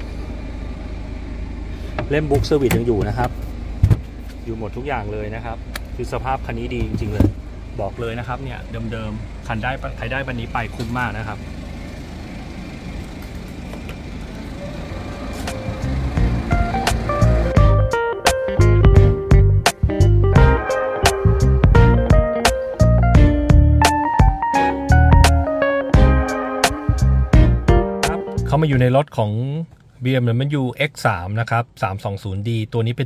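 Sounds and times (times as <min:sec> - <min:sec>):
steady low rumble: 0:00.0 - 0:14.6, 0:15.4 - 0:29.0
background music: 0:15.4 - 0:28.8.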